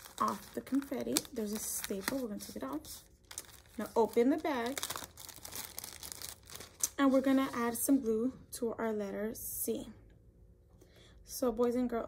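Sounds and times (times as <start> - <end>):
sharp plastic crackle: 0.0 - 7.6
plastic bag crinkling: 0.0 - 7.9.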